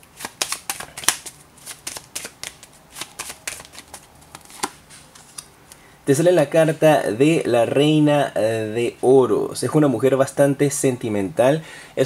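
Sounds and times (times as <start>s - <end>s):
cards being shuffled by hand: 0.0s - 5.8s.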